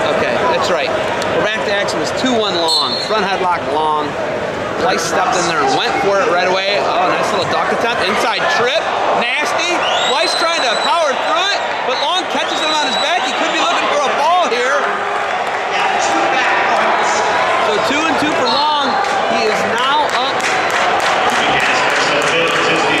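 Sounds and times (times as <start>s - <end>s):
people shouting and yelling: 4.8s - 23.0s
sharp claps or knocks: 20.0s - 22.8s.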